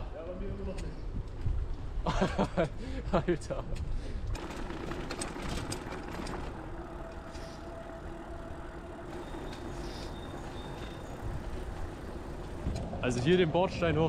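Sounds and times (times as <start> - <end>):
bicycle rolling over cobblestones: 4.3 - 14.0.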